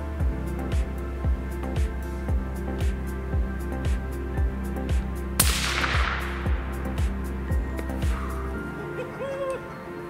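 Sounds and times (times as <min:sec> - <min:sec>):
background music with steady beat: 0:00.0 - 0:10.0
rifle shot: 0:05.4 - 0:06.7.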